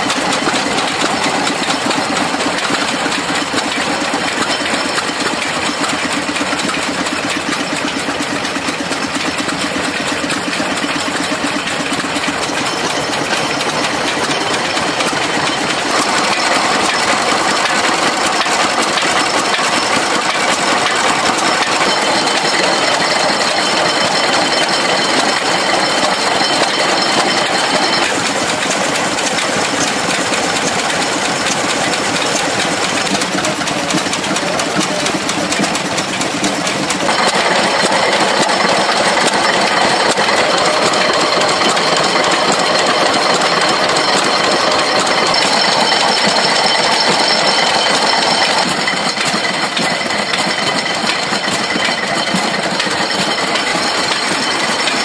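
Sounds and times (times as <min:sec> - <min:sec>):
stationary engines knocking: 0:00.0 - 0:55.0.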